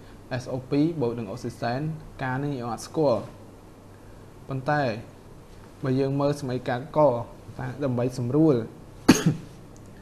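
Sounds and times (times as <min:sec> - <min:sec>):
person speaking: 0:00.3 - 0:03.4, 0:05.8 - 0:09.6
person coughing: 0:09.1 - 0:09.6.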